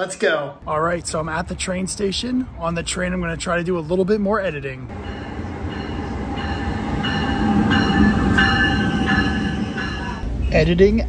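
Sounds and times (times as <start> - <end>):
train rumbling in: 4.8 - 10.7.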